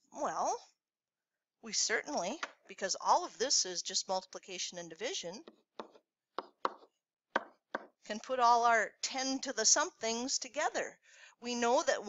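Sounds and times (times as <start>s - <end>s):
pen tapping on writing surface: 5.4s - 8.0s.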